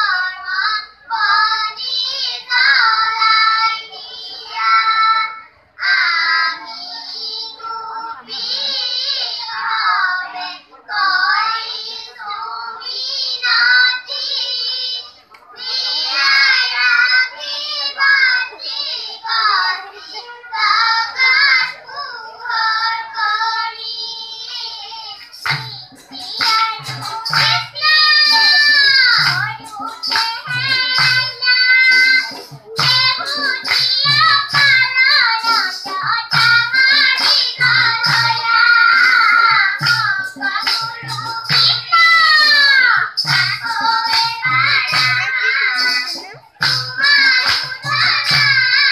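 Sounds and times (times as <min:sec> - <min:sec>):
children singing in unison: 0:00.0 - 0:48.9
sharp claps: 0:25.2 - 0:48.9
barrel drum beat: 0:25.4 - 0:48.9.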